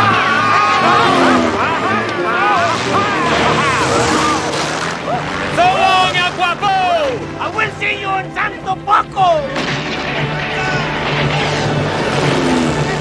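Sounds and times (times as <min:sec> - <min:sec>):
men shouting: 0:00.0 - 0:09.6, 0:10.4 - 0:12.0
propeller plane engine: 0:09.6 - 0:13.0.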